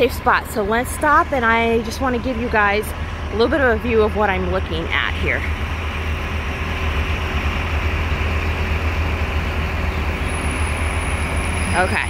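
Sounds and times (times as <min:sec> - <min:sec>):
bus idling: 0:00.0 - 0:12.0
street traffic noise: 0:00.0 - 0:12.0.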